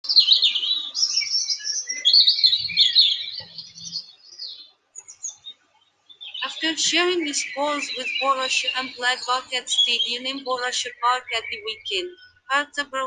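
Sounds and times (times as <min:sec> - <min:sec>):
bird chirps and whistles: 0:00.2 - 0:04.0.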